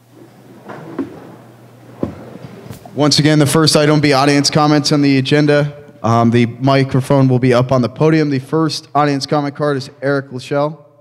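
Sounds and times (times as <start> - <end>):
steady low hum: 0.0 - 11.0
chairs shifting: 0.1 - 3.0.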